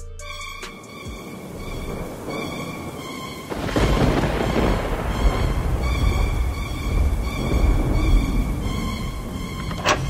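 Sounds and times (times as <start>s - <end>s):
dark music drone: 0.0s - 10.0s
thunder rumbling: 0.8s - 10.0s.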